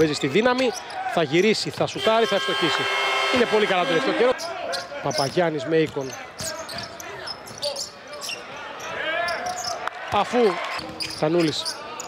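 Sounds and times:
shoe squeaks: 0:04.3 - 0:09.8, 0:10.8 - 0:12.0.

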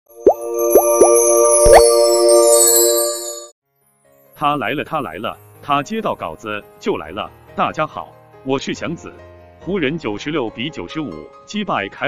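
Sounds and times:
held synthesized chord: 0:00.1 - 0:03.5.

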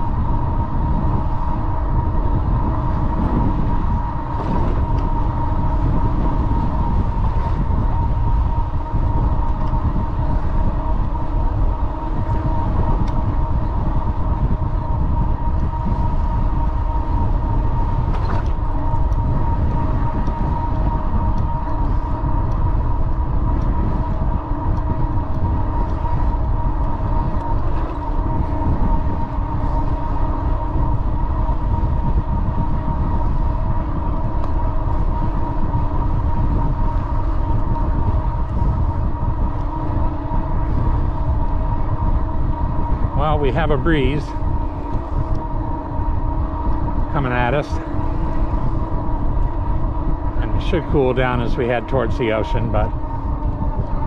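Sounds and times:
steady whine: 0:00.0 - 0:54.0
wind buffeting microphone: 0:00.0 - 0:54.0.

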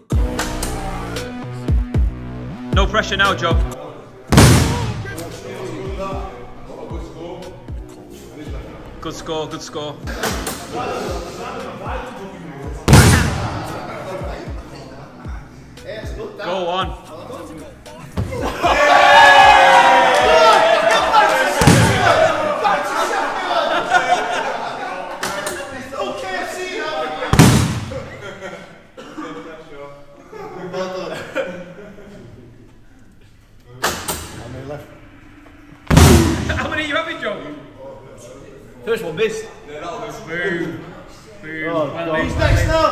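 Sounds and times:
voices reacting: 0:02.8 - 0:33.2
punch ball thump: 0:04.4 - 0:05.2, 0:12.9 - 0:13.7, 0:27.3 - 0:28.1, 0:35.9 - 0:36.6
punch-ball machine being struck: 0:12.9 - 0:13.6, 0:35.9 - 0:36.6
loud drawn-out shout: 0:18.4 - 0:23.5.

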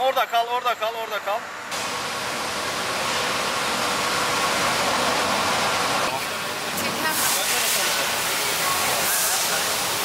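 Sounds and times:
loud rushing hiss: 0:01.8 - 0:10.0.

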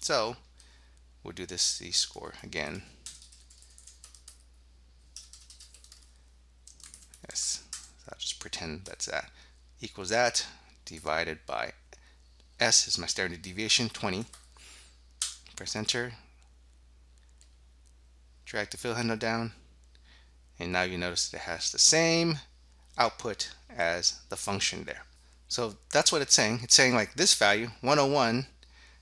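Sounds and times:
low electrical hum: 0:00.0 - 0:29.0
computer keyboard typing: 0:02.8 - 0:04.5, 0:05.1 - 0:08.0, 0:14.2 - 0:14.5.

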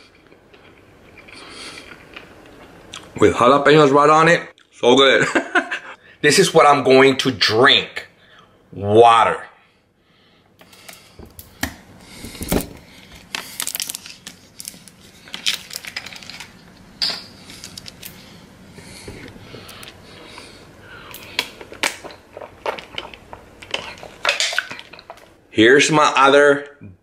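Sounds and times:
plastic water bottle crinkling: 0:13.1 - 0:16.6.

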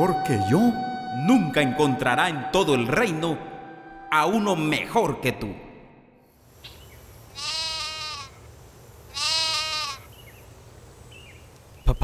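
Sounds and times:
sheep bleating: 0:07.3 - 0:08.4, 0:09.1 - 0:10.1.

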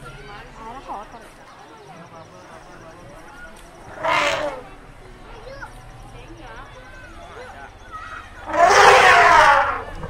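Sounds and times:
elephant trumpeting: 0:03.8 - 0:04.8, 0:08.4 - 0:10.0.

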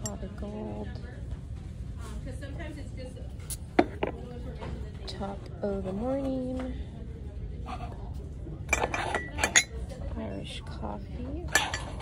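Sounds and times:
ceramic mugs clinking: 0:08.7 - 0:10.0, 0:11.5 - 0:12.0.

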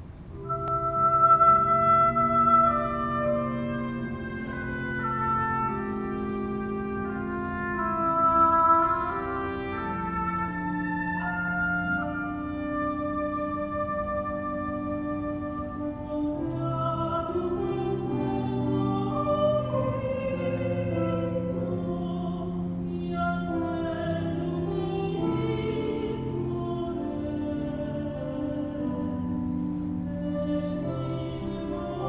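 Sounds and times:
oboe melody: 0:00.0 - 0:32.0
strings holding long notes: 0:00.0 - 0:32.0.

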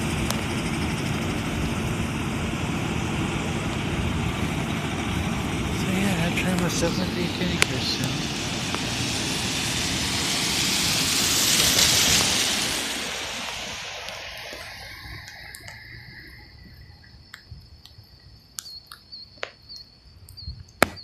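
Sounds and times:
truck running along railroad track: 0:00.0 - 0:17.5
high steady chirping: 0:12.7 - 0:21.0.

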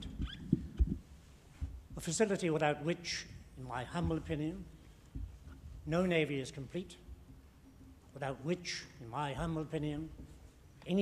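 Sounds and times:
microphone handling thumps: 0:00.0 - 0:02.2, 0:03.3 - 0:06.0.

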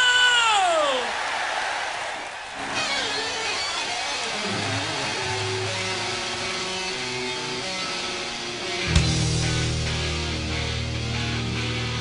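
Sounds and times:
crowd noise: 0:00.0 - 0:11.1.

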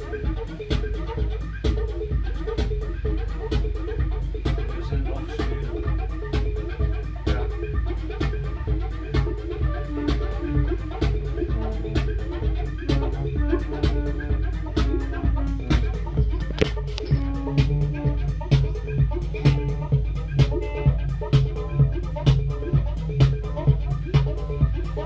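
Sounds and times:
electronic music on synthesizers: 0:00.0 - 0:25.0.

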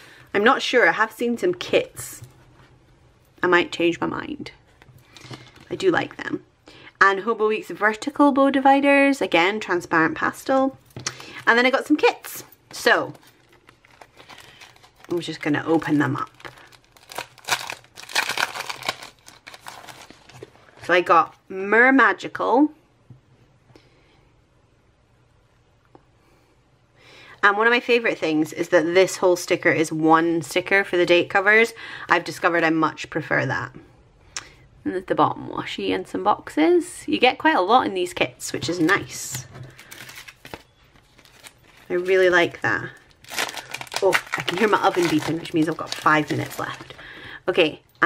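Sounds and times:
woman talking: 0:00.3 - 0:02.3, 0:03.4 - 0:04.6, 0:05.7 - 0:13.2, 0:15.1 - 0:16.4, 0:20.8 - 0:22.8, 0:27.4 - 0:33.9, 0:34.8 - 0:39.5, 0:41.9 - 0:43.0, 0:43.9 - 0:48.0
plastic packaging crinkling: 0:11.0 - 0:20.8, 0:38.7 - 0:47.2.

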